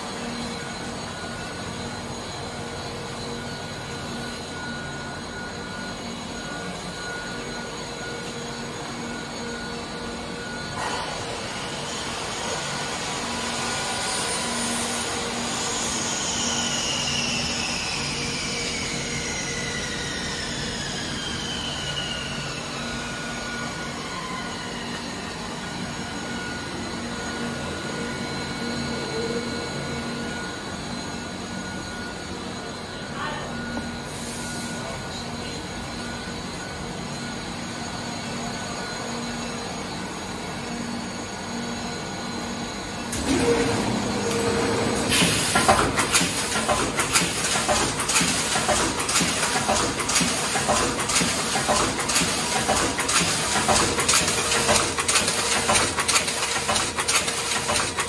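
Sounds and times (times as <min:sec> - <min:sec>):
production line machinery drone: 0:00.0 - 0:58.0
machine knock: 0:45.1 - 0:58.0.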